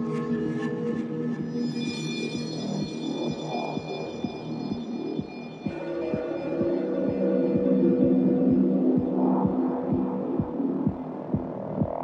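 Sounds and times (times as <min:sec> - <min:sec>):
kick drum: 0:03.3 - 0:12.0.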